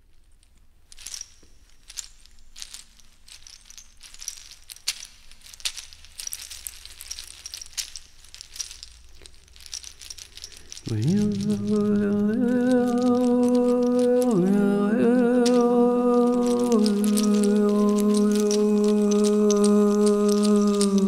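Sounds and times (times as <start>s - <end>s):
clicks and rattles: 0.4s - 21.0s
thin high ringing: 0.9s - 21.0s
low voice humming: 10.9s - 21.0s.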